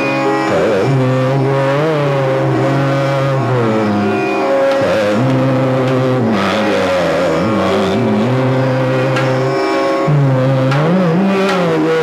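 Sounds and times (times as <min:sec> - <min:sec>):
man singing: 0:00.0 - 0:12.0
steady drone: 0:00.0 - 0:12.0.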